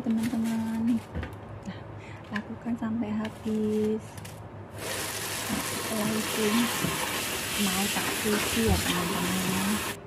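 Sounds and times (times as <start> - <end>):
tap water running into bowl: 4.8 - 10.0.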